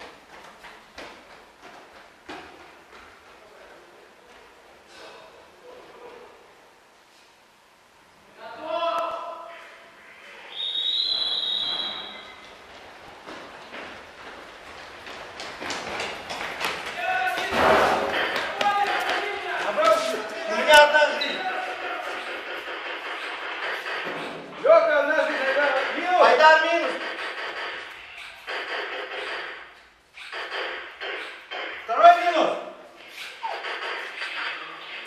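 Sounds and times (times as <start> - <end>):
players calling out in echoing hall: 8.2 - 14.3, 15.1 - 35.0
sharp knocks and thuds: 15.1 - 20.1
sharp crack: 16.4 - 20.1, 25.3 - 31.9.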